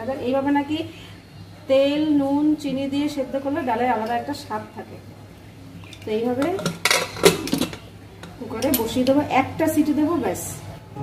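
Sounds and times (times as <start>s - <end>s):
pressure cooker lid scraping and clanking: 6.4s - 8.4s.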